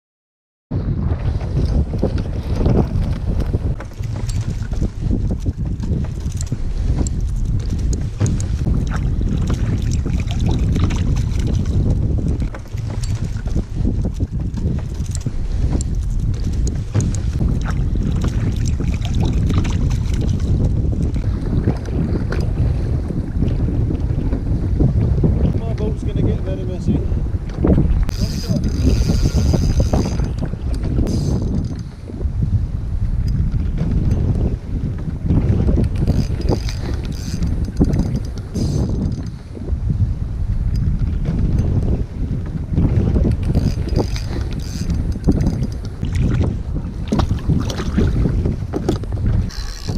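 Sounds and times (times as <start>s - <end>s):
wind buffeting microphone: 0.7s - 49.9s
knocks and splashes: 0.8s - 25.8s, 41.0s - 49.9s
water slapping against kayak: 0.8s - 49.9s.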